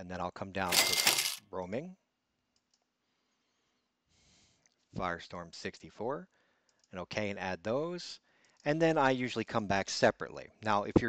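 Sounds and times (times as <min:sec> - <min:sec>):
faint mouse clicks: 0:02.5 - 0:02.9.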